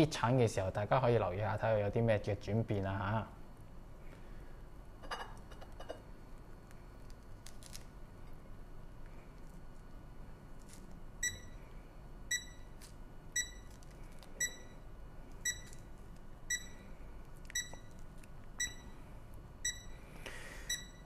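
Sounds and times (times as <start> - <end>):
short high alarm beeps: 11.2 - 11.6, 12.3 - 12.7, 13.4 - 13.7, 14.4 - 14.8, 15.4 - 15.8, 16.5 - 16.8, 17.6 - 17.9, 18.6 - 19.0, 19.6 - 20.0, 20.6 - 21.0.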